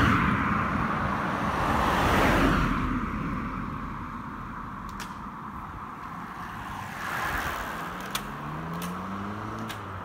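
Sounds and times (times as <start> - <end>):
road hum: 0.0 - 10.0
bicycle passing rush: 6.1 - 10.0
sharp clicks: 8.0 - 9.9.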